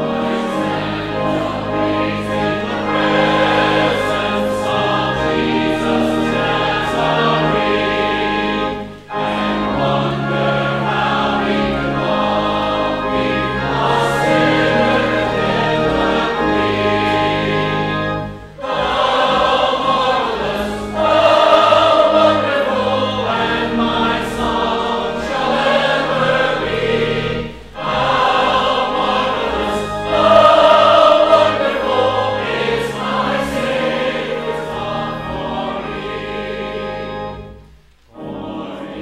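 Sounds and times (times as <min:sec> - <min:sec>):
choir and congregation singing: 0:00.0 - 0:39.0
organ: 0:00.0 - 0:39.0.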